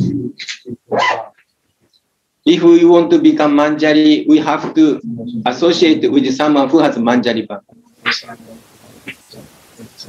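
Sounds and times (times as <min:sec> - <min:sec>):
dog barking: 0:00.9 - 0:01.4.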